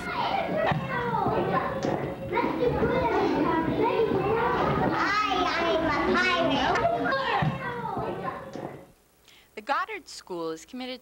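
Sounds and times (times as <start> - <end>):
young children talking: 0.0 - 8.9.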